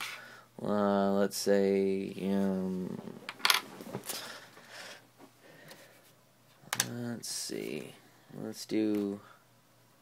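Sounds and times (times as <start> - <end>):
rustling and handling noise: 2.2 - 7.9.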